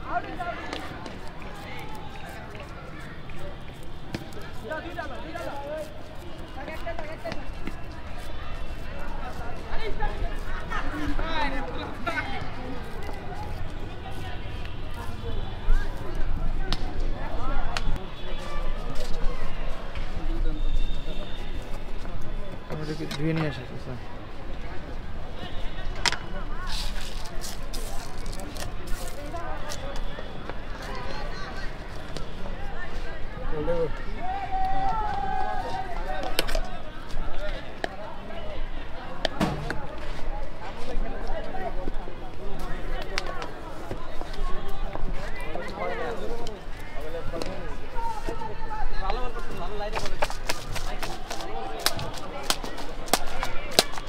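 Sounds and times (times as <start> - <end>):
people talking: 0.0 - 21.4, 25.6 - 54.0
street noise: 0.0 - 54.0.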